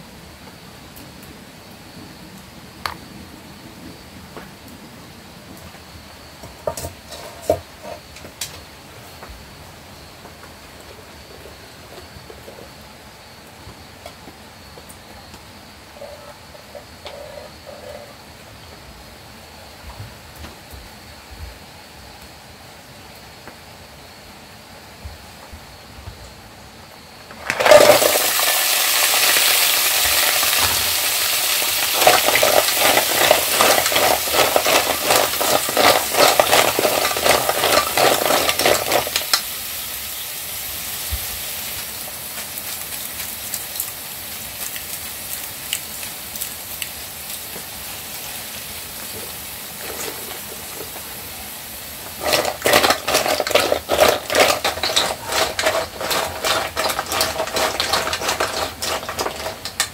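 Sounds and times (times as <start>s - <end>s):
snails sizzling in a pot: 5.3s - 19.8s, 26.8s - 59.9s
shells rattling against a pot: 27.4s - 39.6s, 52.1s - 59.9s.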